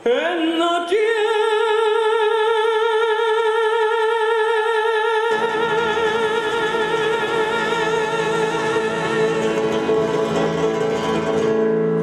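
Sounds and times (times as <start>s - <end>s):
woman singing with vibrato: 0.0s - 10.9s
strummed acoustic guitar: 5.2s - 12.0s.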